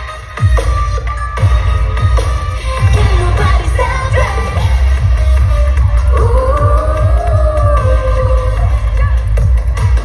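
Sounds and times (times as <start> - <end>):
heavy bass beat: 0.0 - 10.0
live pop music over pa: 0.0 - 10.0.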